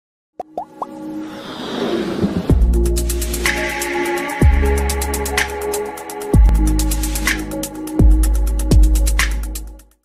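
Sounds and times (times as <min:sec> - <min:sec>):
whoosh: 0:01.2 - 0:03.2.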